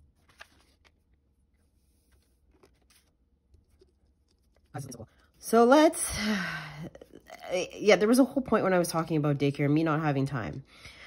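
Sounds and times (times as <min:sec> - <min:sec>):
paper rustling: 0:00.0 - 0:05.0.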